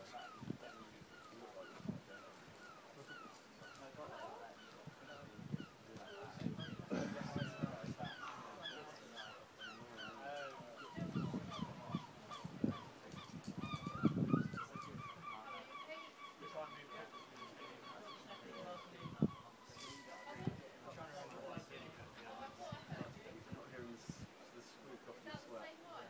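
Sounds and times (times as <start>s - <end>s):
birds chattering: 0.0s - 23.1s.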